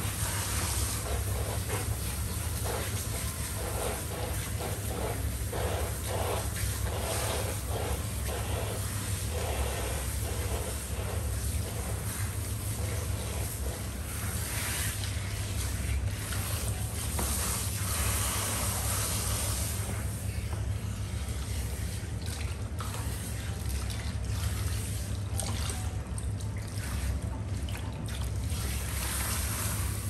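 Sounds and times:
water spraying onto hair: 0.0s - 20.4s, 28.4s - 30.0s.

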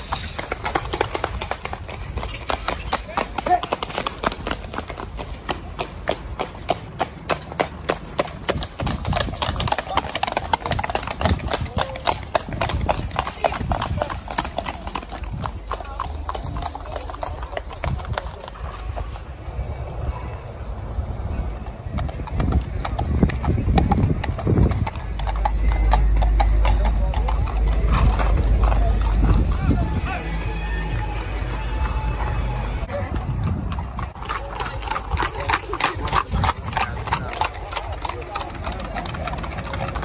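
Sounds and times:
horse hooves clip-clopping on tarmac: 0.0s - 19.5s, 21.5s - 40.0s
heavy low rumble: 19.6s - 34.2s.

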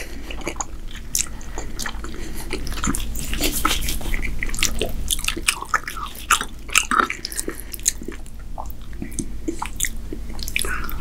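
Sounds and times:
close-up chewing with wet mouth clicks: 0.0s - 11.0s.

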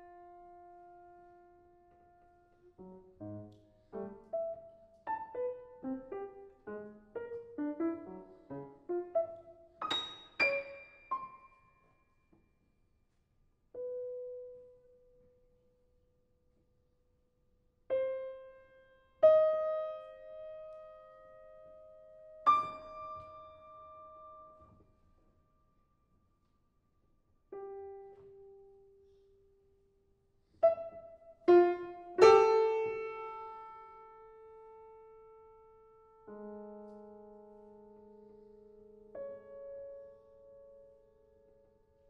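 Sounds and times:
piano notes ringing: 0.0s - 12.0s, 17.9s - 24.8s, 30.6s - 42.0s.

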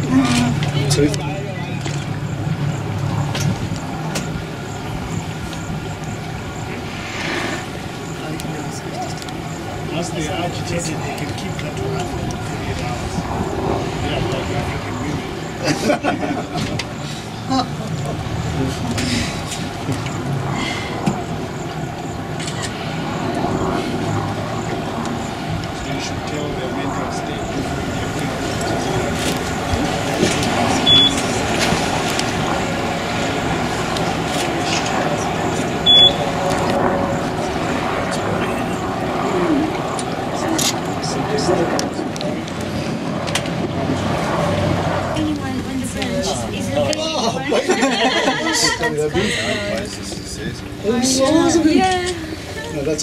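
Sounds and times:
indistinct voices of passengers: 0.0s - 21.8s, 22.4s - 53.0s
boat engine humming: 0.0s - 53.0s
brief high beep: 30.9s - 31.2s, 35.9s - 36.2s.

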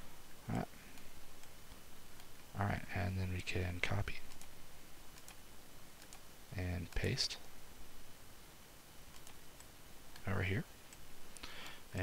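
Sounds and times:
faint computer mouse clicks: 9.1s - 10.3s.

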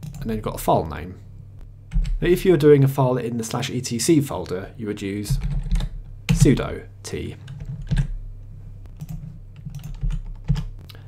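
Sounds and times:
steady low hum: 0.0s - 11.0s
keyboard keystrokes: 9.0s - 10.7s.

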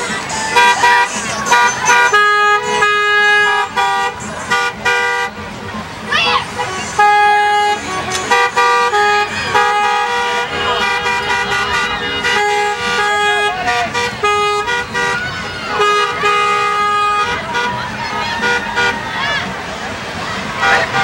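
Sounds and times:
car horns honking: 0.0s - 21.0s
voices calling out: 0.0s - 21.0s.

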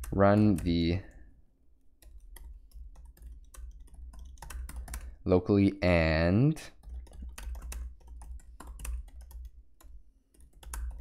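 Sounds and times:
typing on computer keyboard: 0.0s - 1.2s, 2.0s - 5.2s, 6.7s - 11.0s.

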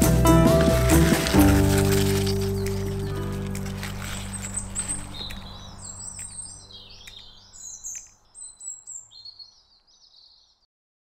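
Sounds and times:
background music: 0.0s - 7.0s
small birds chirping: 0.0s - 10.7s.

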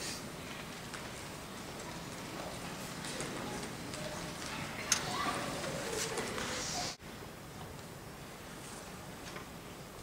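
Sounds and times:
faint murmuring voices: 0.0s - 7.0s.

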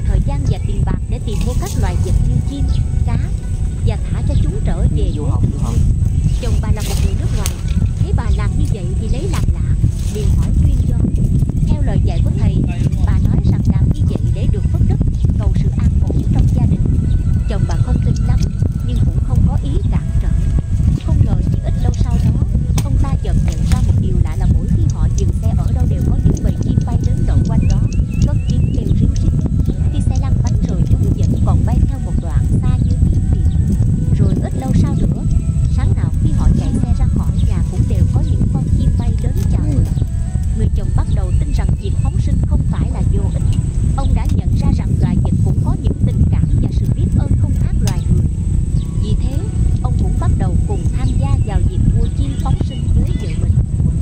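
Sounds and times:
indistinct voices: 0.0s - 54.0s
music: 0.0s - 54.0s
wind rumbling on microphone: 0.0s - 54.0s.

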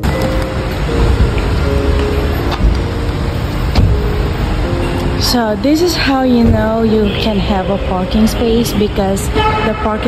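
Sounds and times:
steady noisy rumble: 0.0s - 10.0s.

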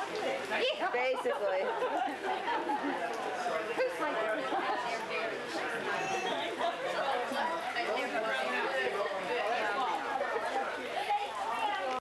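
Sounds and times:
overlapping party chatter: 0.0s - 12.0s.

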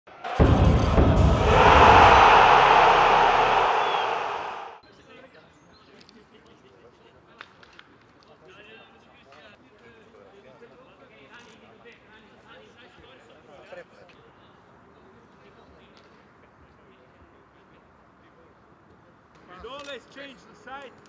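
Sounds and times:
rush of noise: 0.1s - 4.8s
heavy hit with deep rumble: 0.3s - 4.6s.

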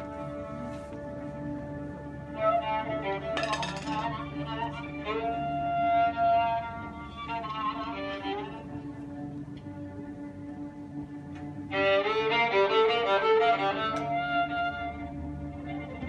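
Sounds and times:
held drone note: 0.0s - 16.0s
violin improvising ornamented melody: 0.0s - 16.0s.

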